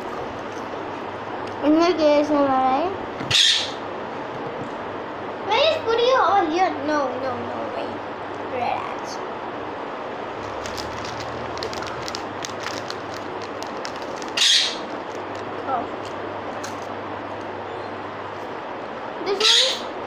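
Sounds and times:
parrot squawk: 3.3 - 3.8, 14.4 - 14.9, 19.4 - 19.9.

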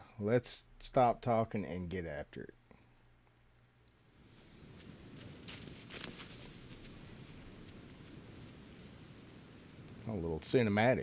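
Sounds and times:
hissing ambience: 3.9 - 11.0.

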